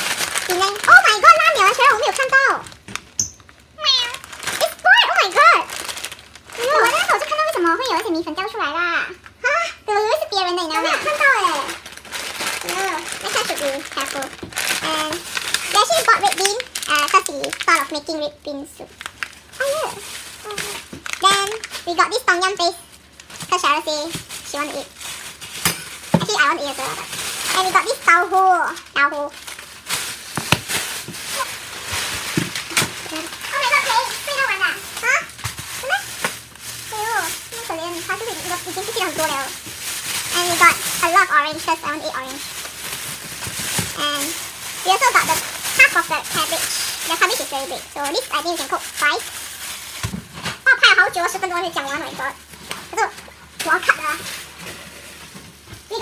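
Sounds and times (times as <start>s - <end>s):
plastic bags crinkling: 0.0s - 56.0s
woman talking: 6.5s - 11.8s, 12.6s - 18.9s, 19.6s - 22.8s, 36.9s - 39.6s, 43.9s - 49.2s.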